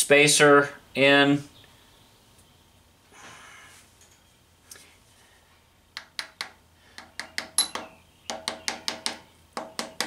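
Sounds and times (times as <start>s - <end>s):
mallet tapping metal: 6.0s - 10.0s.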